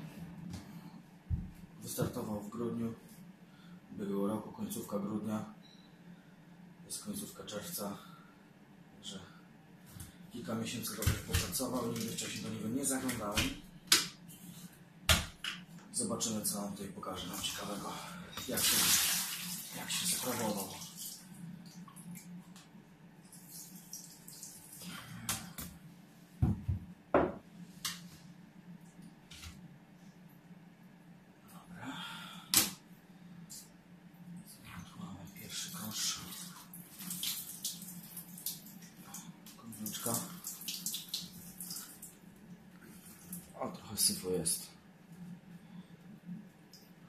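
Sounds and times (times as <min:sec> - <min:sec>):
steady low hum: 0:00.0 - 0:18.6, 0:19.6 - 0:47.0
water dripping and trickling: 0:18.5 - 0:22.4, 0:23.3 - 0:24.9, 0:35.8 - 0:43.6
heavy thumps in a bathtub: 0:26.4 - 0:27.4.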